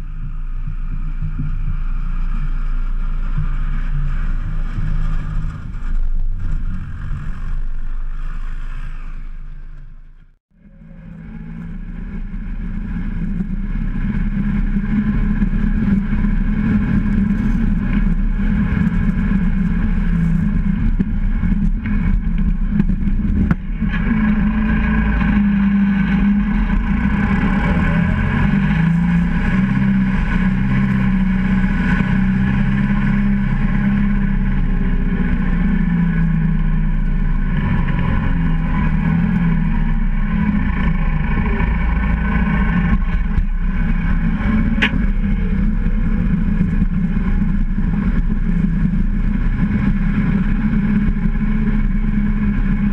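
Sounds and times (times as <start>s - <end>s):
tractor diesel engine running: 0.0s - 52.9s.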